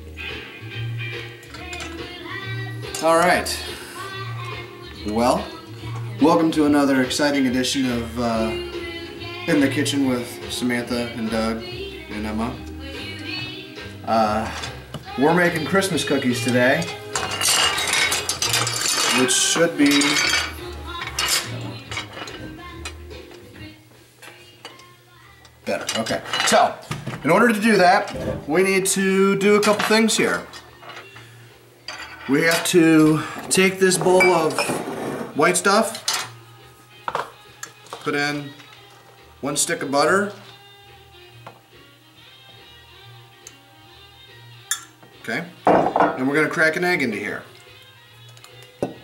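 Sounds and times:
faint music: 0.0s - 49.0s
utensils and dishes clinking: 1.3s - 3.7s, 14.2s - 23.5s, 25.6s - 28.5s, 29.3s - 36.4s, 37.0s - 39.0s, 44.6s - 45.0s, 45.6s - 49.0s.

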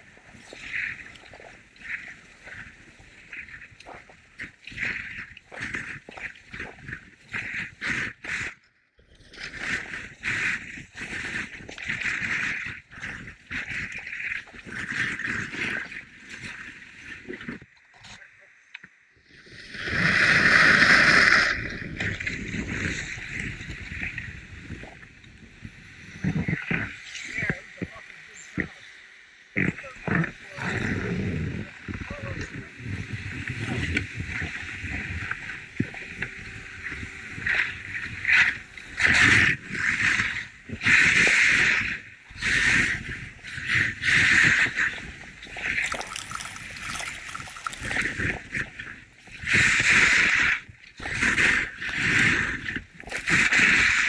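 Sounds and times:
skis scraping on snow: 0.0s - 8.1s
skis sliding on snow: 0.0s - 8.5s, 9.4s - 17.4s, 36.5s - 54.0s
wind on microphone: 0.0s - 8.6s, 9.2s - 17.7s, 19.3s - 28.8s, 29.6s - 54.0s.

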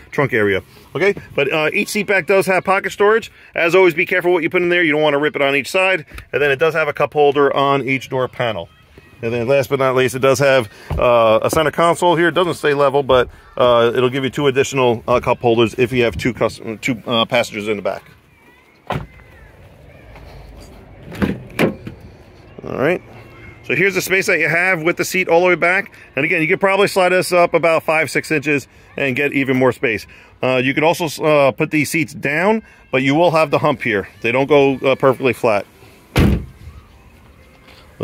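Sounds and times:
car door shutting: 36.1s - 36.6s.

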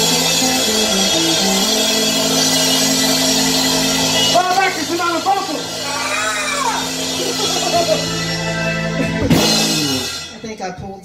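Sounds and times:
electric guitar: 0.0s - 10.5s
cymbals wash: 0.0s - 10.7s
bass guitar: 0.0s - 11.0s
drums: 0.0s - 11.0s
keyboard: 0.0s - 11.0s.

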